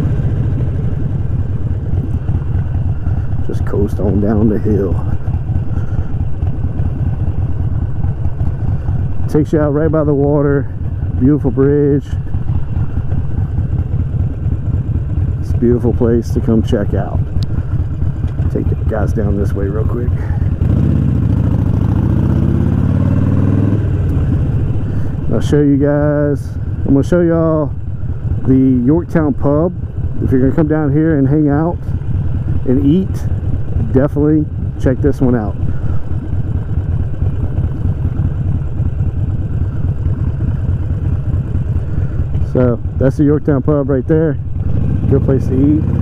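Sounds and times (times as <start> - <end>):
motorcycle engine revving: 0.0 - 46.0.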